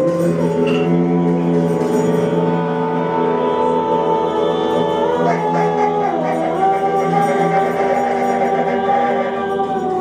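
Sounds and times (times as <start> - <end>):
ensemble long held notes: 0.0 - 10.0
voices singing: 0.0 - 10.0.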